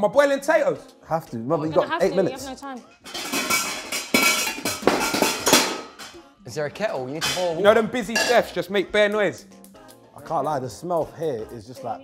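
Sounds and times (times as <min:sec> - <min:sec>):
pots and pans clinking: 0:02.9 - 0:06.2, 0:07.1 - 0:08.7.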